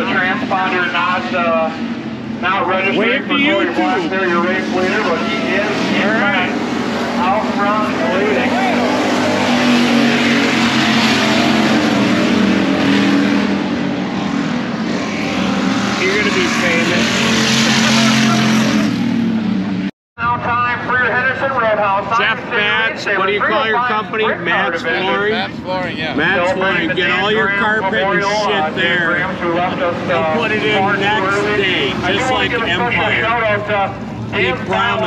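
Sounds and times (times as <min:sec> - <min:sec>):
people talking: 0:00.0 - 0:01.8, 0:02.4 - 0:06.6, 0:07.2 - 0:09.1, 0:16.0 - 0:19.0, 0:20.2 - 0:35.0
race car engines droning: 0:00.0 - 0:35.0.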